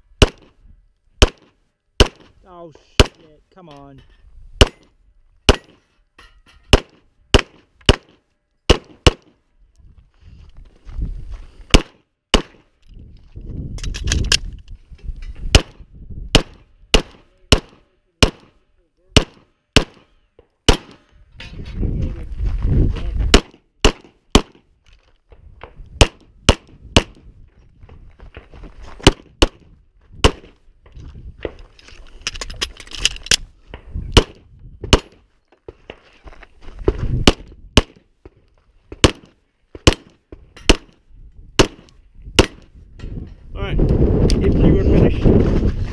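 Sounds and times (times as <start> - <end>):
pistol shots: 0.2 - 0.5, 1.2 - 2.3, 3.0 - 3.2, 4.6 - 4.9, 5.5 - 5.8, 6.7 - 9.4, 11.7 - 12.6, 15.5 - 21.0, 23.3 - 24.7, 30.2 - 30.6, 37.3 - 38.0, 39.0 - 41.0, 41.6 - 42.7
low microphone rumble: 21.3 - 23.4.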